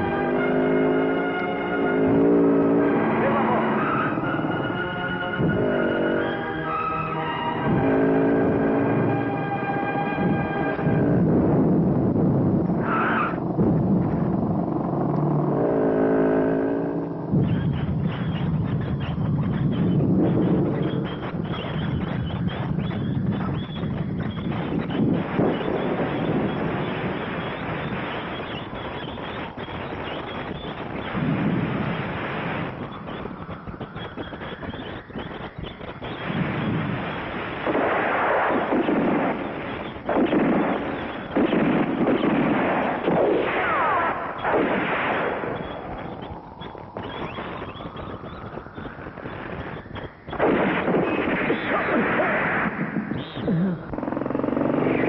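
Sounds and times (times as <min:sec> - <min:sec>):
motorcycle engine revving: 0:00.0 - 0:04.6, 0:07.6 - 0:11.7, 0:12.8 - 0:22.6, 0:53.1 - 0:55.0
explosion blasts: 0:00.0 - 0:34.8, 0:35.4 - 0:55.0
gunfire: 0:34.0 - 0:46.4, 0:49.1 - 0:55.0.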